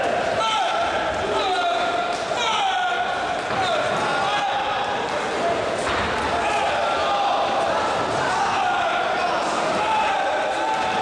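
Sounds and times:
crowd din: 0:00.0 - 0:11.0
spectators shouting: 0:00.0 - 0:11.0.

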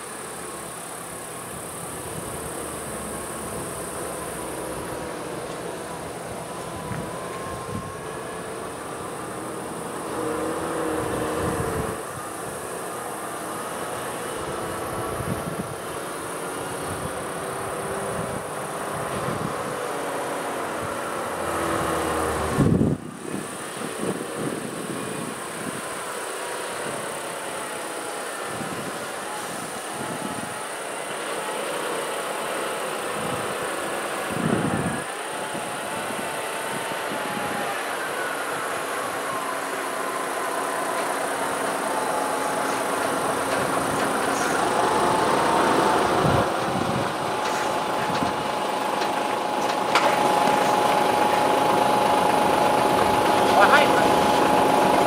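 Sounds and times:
diesel truck engine running: 0:00.0 - 0:55.0
steady whine: 0:00.0 - 0:55.0.

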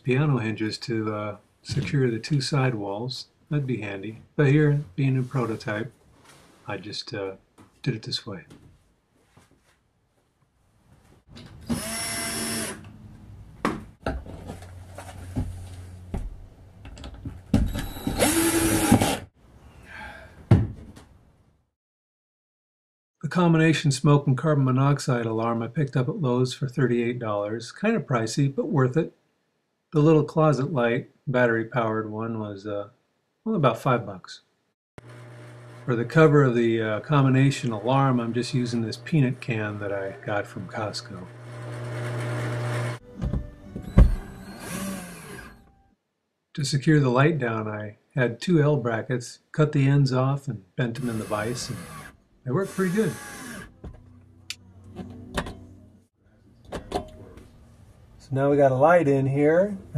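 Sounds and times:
cordless drill driving screw: 0:11.6 - 0:12.9, 0:17.7 - 0:19.2, 0:41.3 - 0:43.0, 0:43.8 - 0:45.6, 0:51.0 - 0:53.7.

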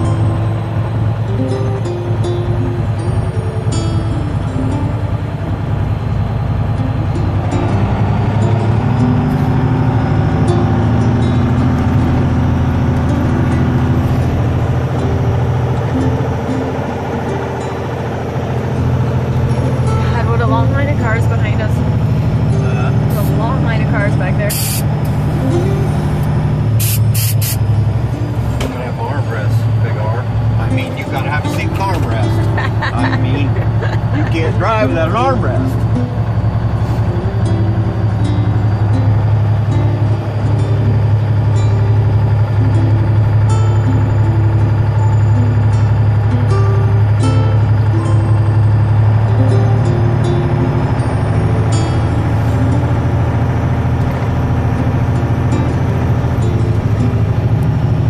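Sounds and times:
truck engine drone: 0:00.0 - 0:58.0.

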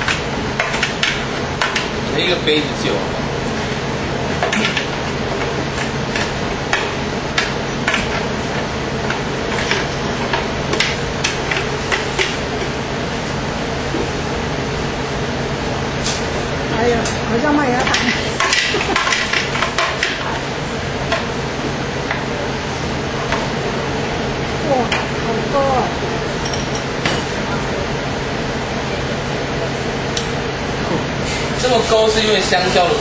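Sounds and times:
steady hum: 0:00.0 - 0:33.0.

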